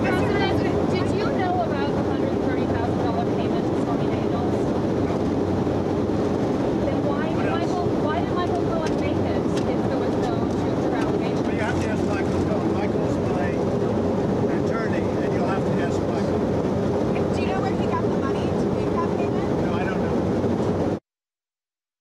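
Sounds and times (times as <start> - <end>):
jet engine and airflow noise: 0.0 - 21.0.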